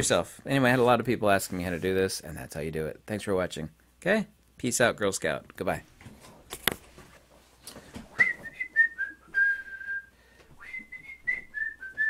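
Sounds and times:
person whistling a tune: 8.2 - 12.0.

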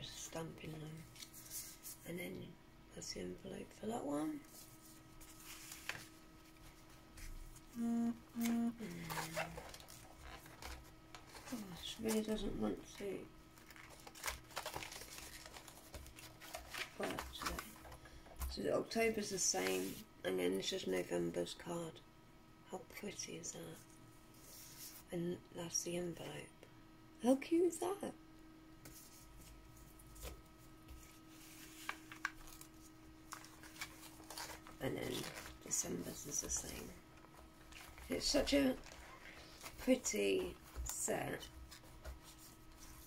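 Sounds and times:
paper and card rustling: 0.6 - 2.0, 4.4 - 18.5, 28.8 - 43.0
card book pages turning: 1.0 - 2.0, 4.5 - 7.4, 8.4 - 13.0, 13.6 - 18.0, 28.8 - 36.9, 37.6 - 43.0.

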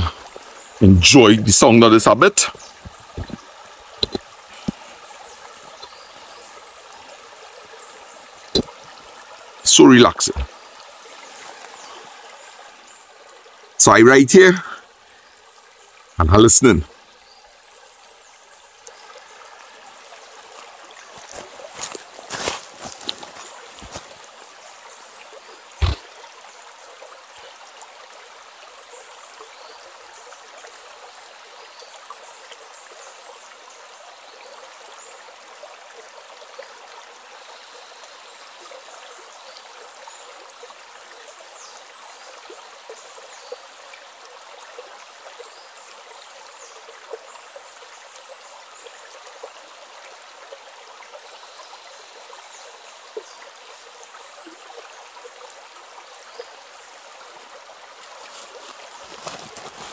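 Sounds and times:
water plinks and splashes: 0.0 - 6.3, 8.3 - 12.9, 20.5 - 24.3, 25.7 - 26.5
stream babbling over stones: 0.0 - 59.9.

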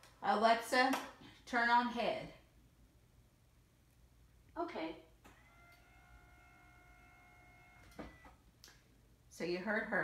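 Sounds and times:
bed motor whining: 5.2 - 8.4.

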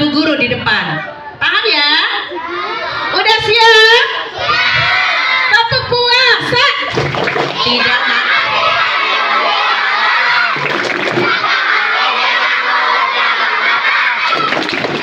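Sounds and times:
children shouting and chanting: 2.2 - 6.2, 7.5 - 10.6, 11.2 - 15.0.

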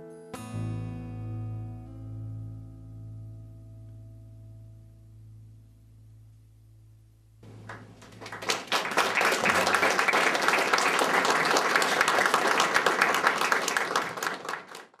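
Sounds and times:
band low note: 0.6 - 8.2
audience applauding: 7.4 - 15.0.

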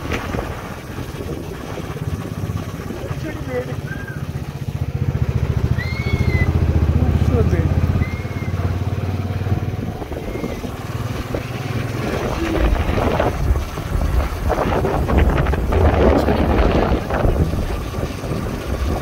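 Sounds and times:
motorcycle engine rumble: 0.0 - 19.0.

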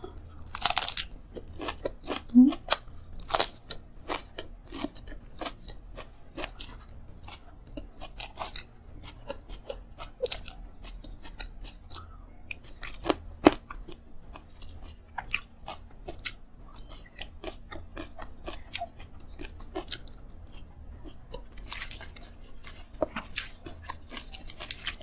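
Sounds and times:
chewing and crunching food: 0.0 - 25.0.

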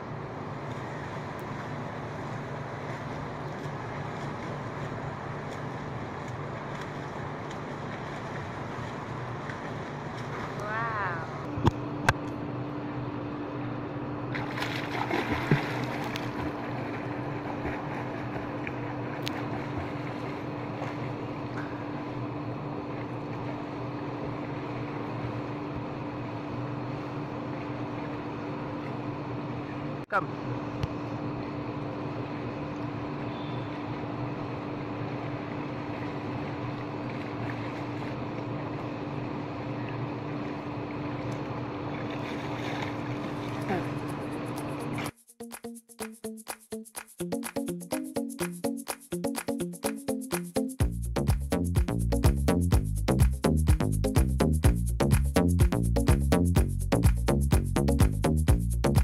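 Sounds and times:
pool water splashing: 0.0 - 12.9, 13.5 - 29.9, 31.2 - 45.1
steady low hum: 0.0 - 45.1
swimmer splashing in pool: 14.4 - 22.2, 34.9 - 44.1.

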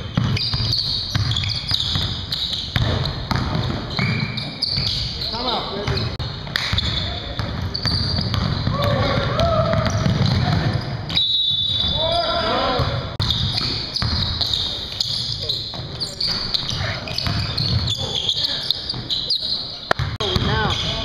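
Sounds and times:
basketball bouncing on hardwood floor: 0.0 - 4.2, 5.9 - 10.8, 13.2 - 14.4, 17.2 - 17.9, 20.0 - 21.0.

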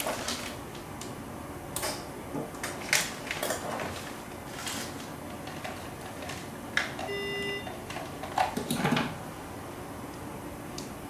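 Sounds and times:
electronic beep: 7.1 - 7.7.

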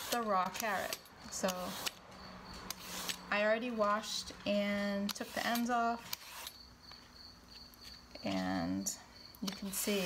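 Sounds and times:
peeler scraping carrot: 0.0 - 6.7.

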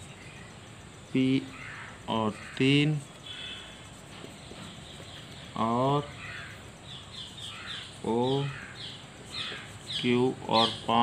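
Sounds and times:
marker squeaking on whiteboard: 0.0 - 11.0
steady background hiss: 0.0 - 11.0.

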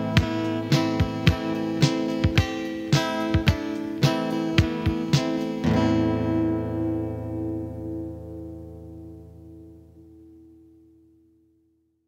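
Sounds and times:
acoustic guitar chord ringing: 0.0 - 11.6.

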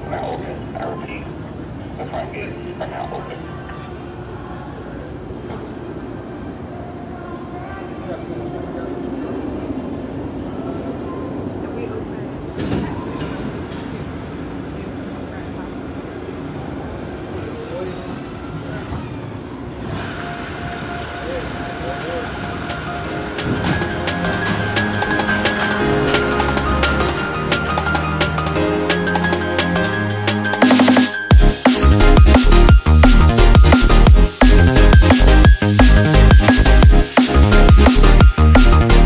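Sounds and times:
roller coaster train rumbling: 0.0 - 29.9
steady whine: 19.7 - 39.0.

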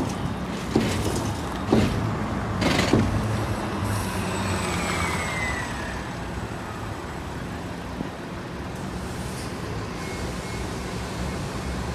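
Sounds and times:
bus drivetrain humming: 0.0 - 11.9
road noise: 0.0 - 11.9.

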